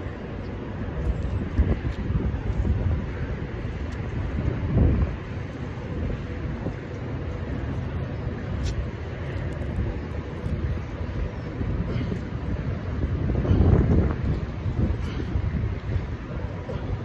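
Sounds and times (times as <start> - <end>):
wind blowing across microphone: 0.0 - 17.0.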